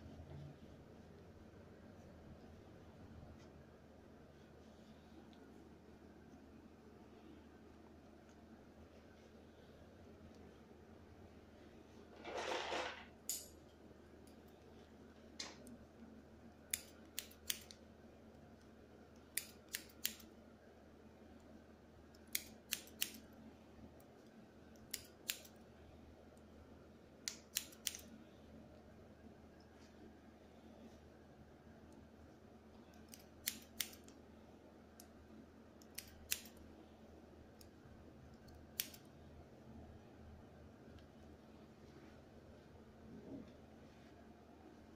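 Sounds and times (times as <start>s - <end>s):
faint steady hum: 0.0s - 44.9s
scissors snipping hair: 16.7s - 17.8s, 19.2s - 20.3s, 22.1s - 23.4s, 24.7s - 25.6s, 27.2s - 28.2s, 32.9s - 34.2s, 35.8s - 36.6s, 37.6s - 39.1s.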